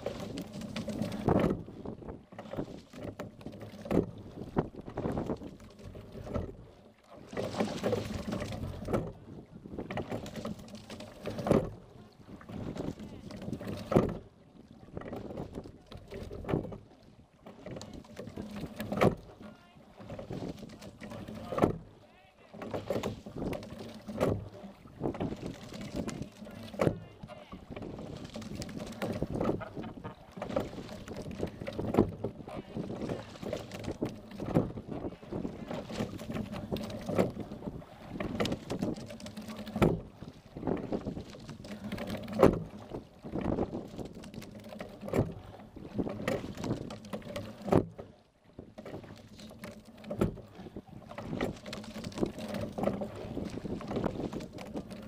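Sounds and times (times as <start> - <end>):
oars clunking in gates: 0.0 - 55.0
water rushing along hull: 0.0 - 55.0.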